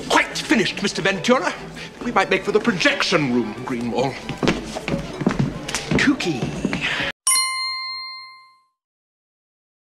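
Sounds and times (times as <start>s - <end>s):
film soundtrack: 0.0s - 7.1s
bell-like ding: 7.3s - 8.8s.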